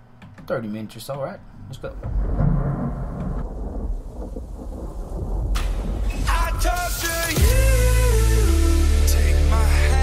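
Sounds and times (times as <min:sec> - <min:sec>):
rumble of thunder: 0:02.0 - 0:06.8
rain: 0:02.3 - 0:07.6.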